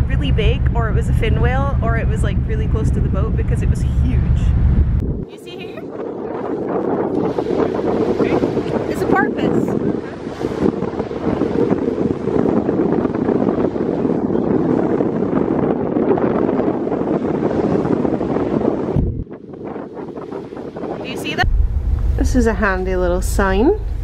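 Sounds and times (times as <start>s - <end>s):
sea: 0.0s - 24.0s
ship's low rumble: 0.0s - 24.0s
wind buffeting microphone: 0.0s - 24.0s.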